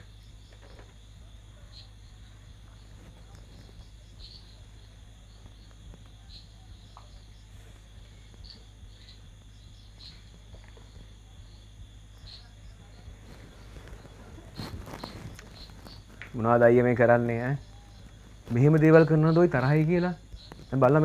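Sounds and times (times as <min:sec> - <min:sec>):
insects chirping: 0:00.0 - 0:21.0
steady low hum: 0:00.0 - 0:21.0
brief rustle: 0:13.3 - 0:16.0.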